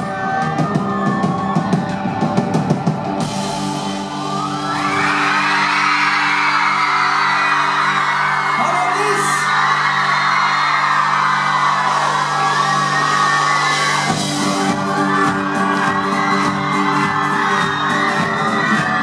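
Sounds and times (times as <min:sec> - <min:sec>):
audience cheering and whooping: 0:00.0 - 0:19.0.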